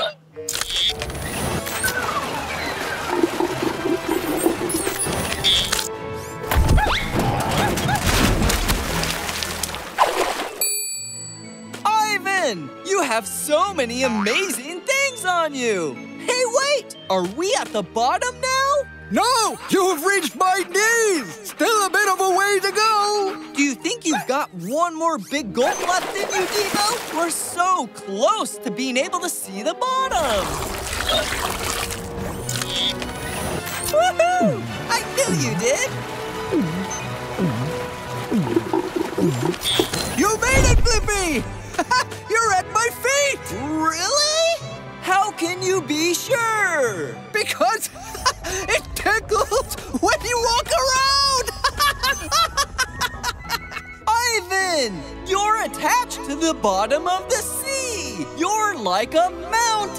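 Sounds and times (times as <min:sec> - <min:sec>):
background music: 0:00.0 - 0:59.9
cartoon straw slurping gurgle: 0:02.8 - 0:05.7, 0:30.4 - 0:33.9, 0:36.4 - 0:40.2
water sucked through a straw: 0:36.5 - 0:40.2.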